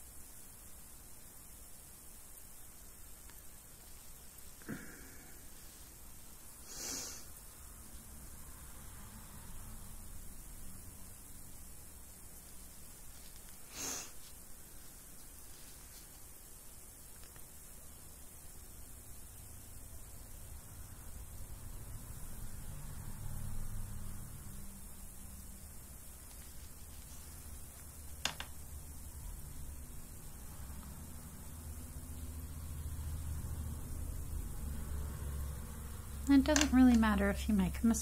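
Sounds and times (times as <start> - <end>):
faint steady hiss: 0.0 - 38.0.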